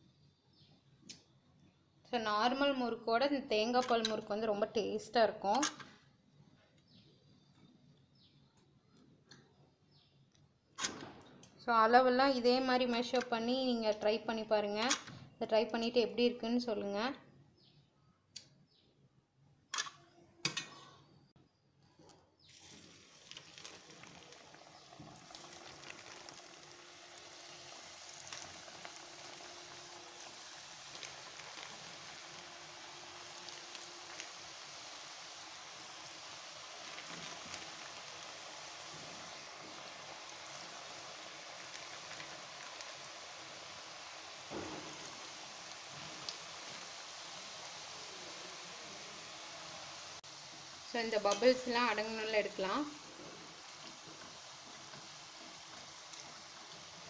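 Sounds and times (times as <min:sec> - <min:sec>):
deep-frying sizzle in oil: 0:22.4 - 0:57.0.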